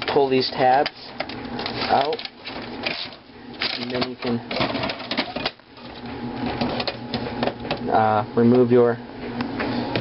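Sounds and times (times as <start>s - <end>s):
disk drive clicking and rattling: 0.0s - 7.9s.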